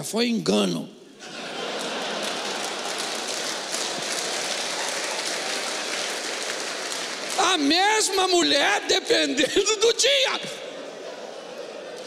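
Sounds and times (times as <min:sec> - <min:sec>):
audience applauding: 0:01.2 - 0:08.5.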